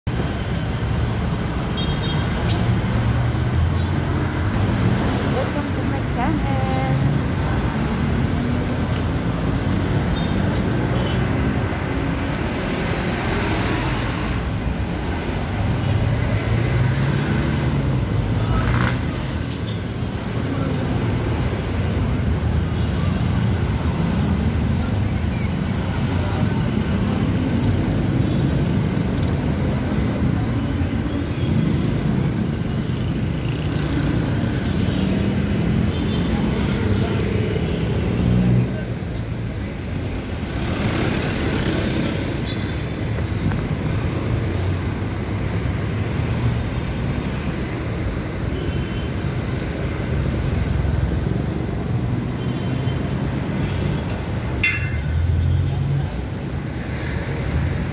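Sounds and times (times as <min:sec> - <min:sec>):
city street traffic rumble: 0:00.0 - 0:57.9.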